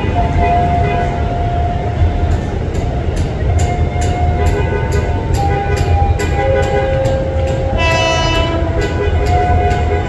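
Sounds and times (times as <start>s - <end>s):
train rumble with sustained tone: 0.0s - 10.0s.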